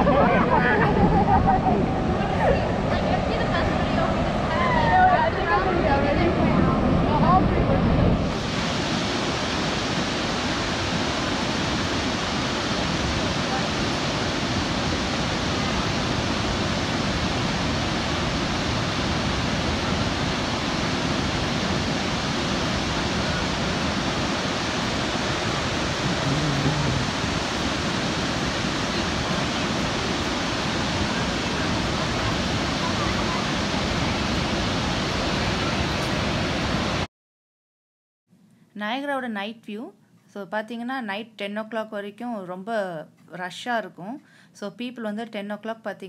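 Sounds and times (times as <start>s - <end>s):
voices: 0.0s - 7.9s, 26.0s - 27.1s
waterfall rushing: 0.0s - 37.1s.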